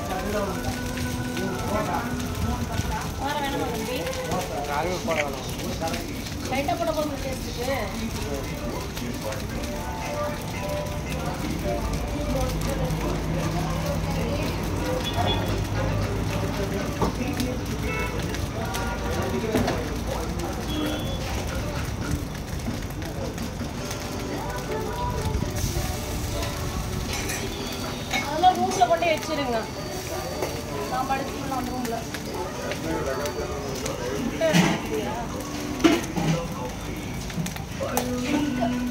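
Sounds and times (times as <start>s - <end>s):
people talking: 0.0s - 22.2s, 27.4s - 37.0s
faint music: 0.0s - 38.9s.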